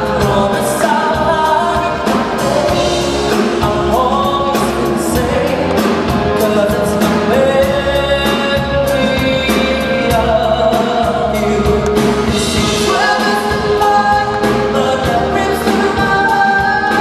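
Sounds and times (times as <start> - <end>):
instrumental accompaniment: 0.0 - 17.0
man singing into microphone: 0.0 - 17.0.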